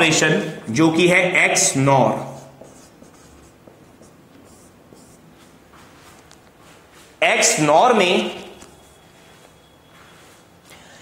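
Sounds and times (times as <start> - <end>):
marker pen writing on whiteboard: 1.5 - 7.6.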